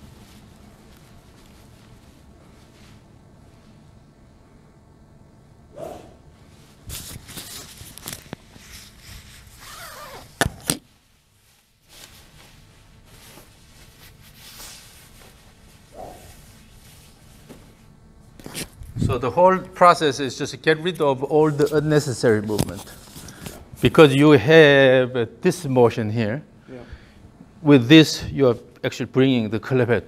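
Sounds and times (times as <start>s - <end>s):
shuffling and handling noises: 0.0s - 4.1s, 6.4s - 19.9s, 20.6s - 24.2s.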